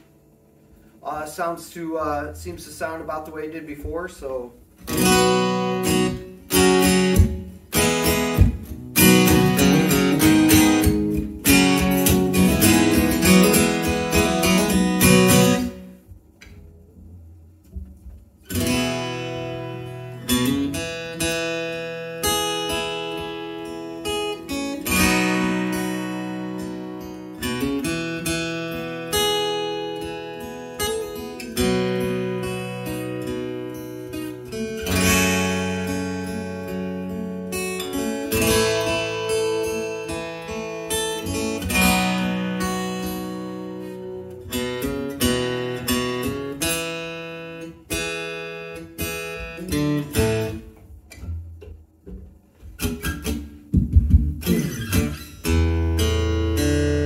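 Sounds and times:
acoustic guitar strummed chords: 0.0 - 57.0.

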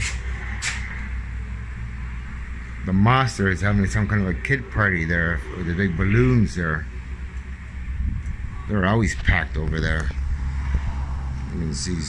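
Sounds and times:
outdoor rumble and hiss: 0.0 - 12.0.

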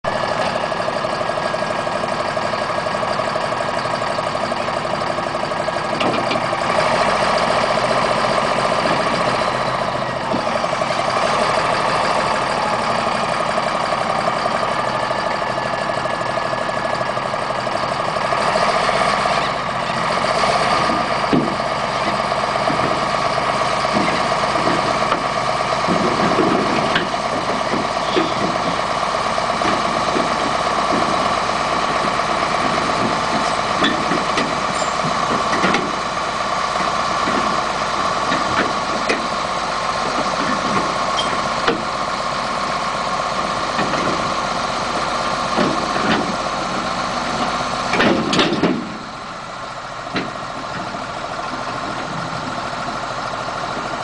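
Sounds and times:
dozer diesel engine running: 0.0 - 54.0.

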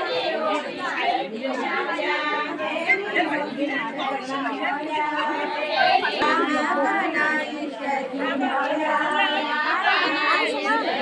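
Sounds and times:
women singing together: 0.0 - 11.0.

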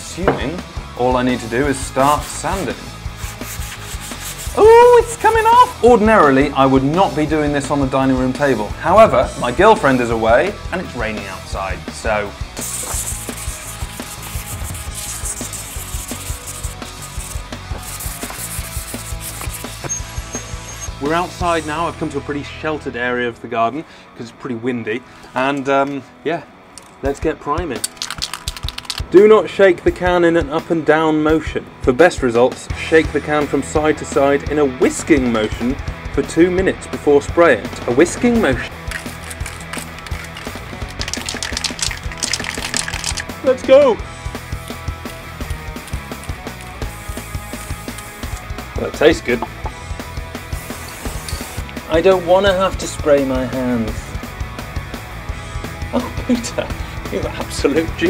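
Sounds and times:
background music with steady beat: 0.0 - 22.5, 26.8 - 58.0
sandpaper scratching metal: 2.0 - 4.7, 12.6 - 21.0, 45.8 - 48.5, 50.5 - 51.7
aerosol can ball rattling: 27.8 - 29.1, 38.8 - 43.4, 45.4 - 48.5, 50.5 - 51.8.

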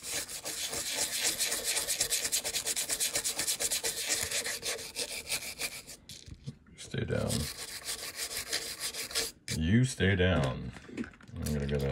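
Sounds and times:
toothbrush scrubbing: 0.0 - 6.0, 7.2 - 9.6, 11.6 - 11.9.

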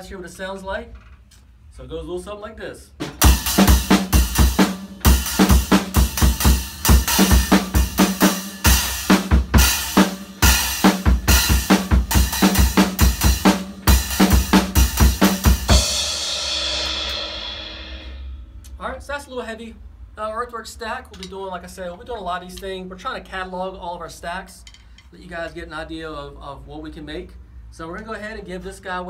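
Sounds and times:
drum kit groove: 2.9 - 18.8
crunch cymbal stack: 3.2 - 18.8.

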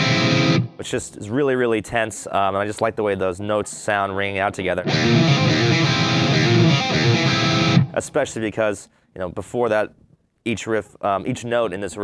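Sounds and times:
electric guitar chord ringing: 0.0 - 0.8, 4.9 - 8.0.

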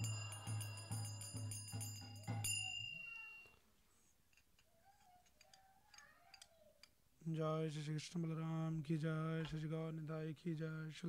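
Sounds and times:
drum beat: 0.0 - 2.5
hand cymbals: 0.0 - 3.4.

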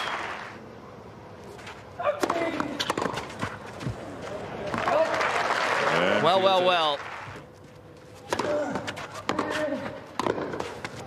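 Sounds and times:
crowd noise: 0.0 - 11.0
tennis ball hit by racket: 2.2 - 3.6, 8.3 - 11.0.

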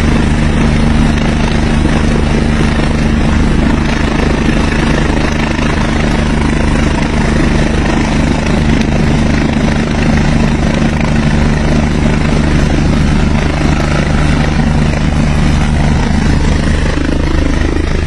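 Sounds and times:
helicopter hovering: 0.0 - 18.0.

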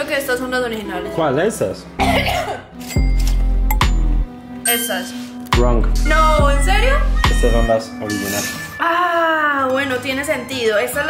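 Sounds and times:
steady music tones: 0.0 - 11.0.

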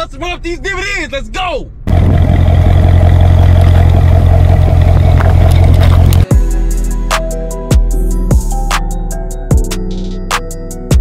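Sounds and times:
car engine rumble: 0.0 - 8.5
music with sharp drum hits: 6.2 - 11.0.

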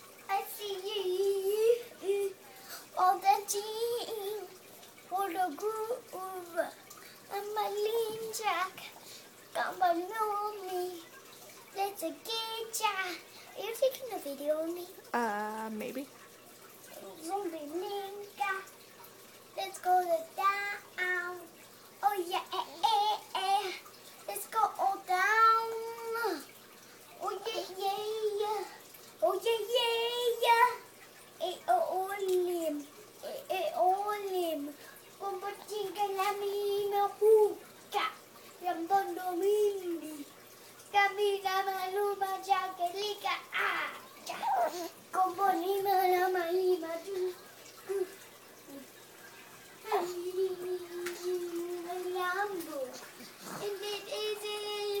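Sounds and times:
young child singing: 0.0 - 15.7, 16.9 - 18.8, 19.6 - 49.0, 49.8 - 55.0.

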